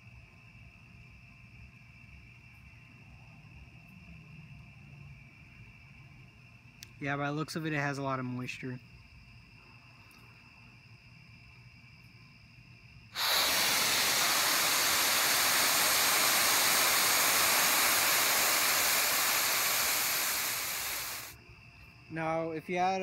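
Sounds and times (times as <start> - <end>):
rocket fuel burning with loud hiss: 13.1 - 21.4.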